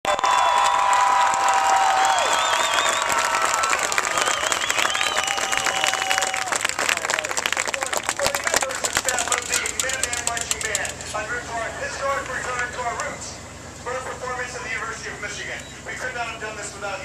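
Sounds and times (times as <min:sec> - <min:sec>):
crowd whooping and shouting: 0:00.0 - 0:07.3
crowd clapping: 0:00.0 - 0:11.0.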